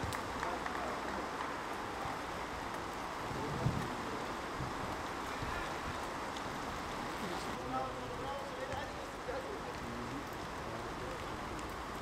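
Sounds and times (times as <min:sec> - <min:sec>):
wind on microphone: 0:03.2 - 0:06.1.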